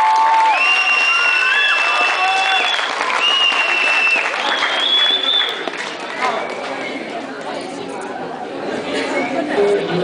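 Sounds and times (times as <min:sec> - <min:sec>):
audience chatter: 0:00.5 - 0:10.0.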